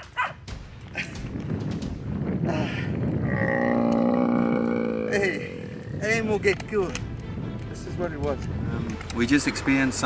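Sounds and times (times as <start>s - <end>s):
buffalo bellowing: 3.3s - 5.7s.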